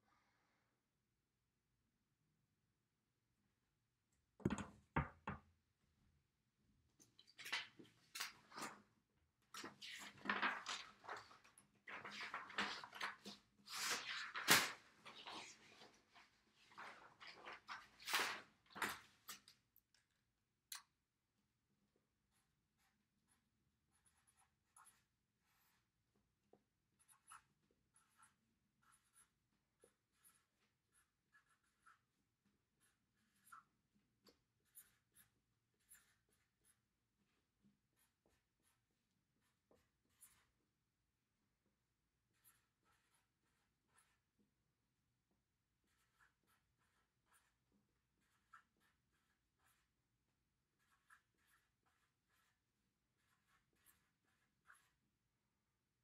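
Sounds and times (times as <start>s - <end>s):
paper handling: 9.6s - 16.0s
pen scratching on paper: 22.2s - 40.8s, 42.2s - 45.0s, 45.6s - 55.8s.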